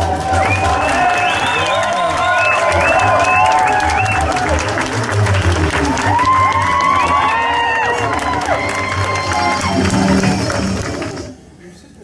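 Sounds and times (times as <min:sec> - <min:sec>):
guests clapping: 0:00.0 - 0:11.4.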